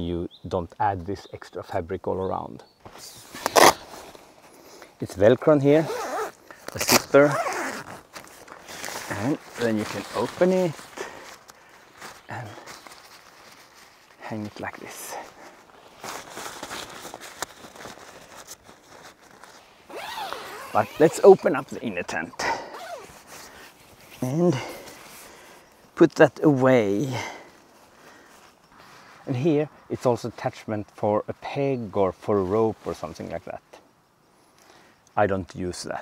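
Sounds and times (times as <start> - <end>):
clothes rustling on grass: 2.8 - 33.6.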